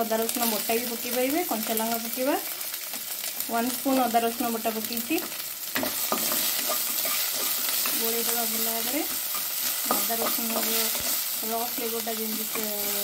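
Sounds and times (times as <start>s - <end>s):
food sizzling in hot oil: 0.0s - 13.0s
spatula stirring in pan: 5.2s - 13.0s.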